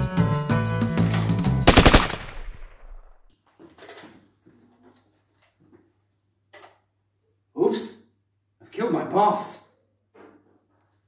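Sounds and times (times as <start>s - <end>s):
music: 0.0s - 1.7s
machine-gun fire: 1.6s - 3.3s.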